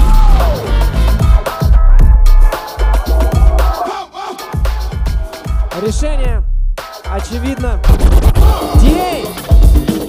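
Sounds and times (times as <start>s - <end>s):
hip hop break beat: 0.0s - 10.0s
record scratching: 7.8s - 9.2s.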